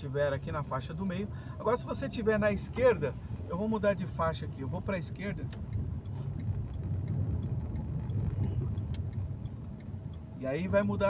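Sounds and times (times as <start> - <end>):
car engine and tyres on wet road: 0.0 - 11.0.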